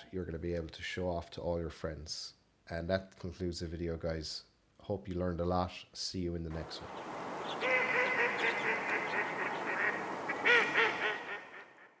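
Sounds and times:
nasal quack-like calls: 6.9 - 12.0.

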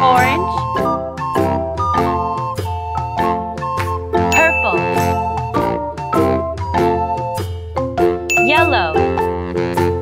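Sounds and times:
children's music on chiming notes: 4.3 - 5.6, 8.3 - 9.6.

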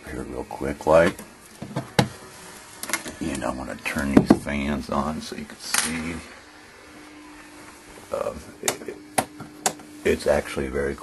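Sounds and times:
cooling fans whooshing: 0.0 - 11.0
faint steady hum: 0.0 - 11.0.

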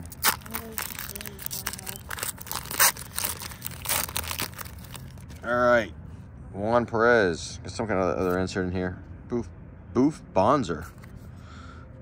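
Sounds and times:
foil wrapper crinkling and tearing: 0.0 - 5.4.

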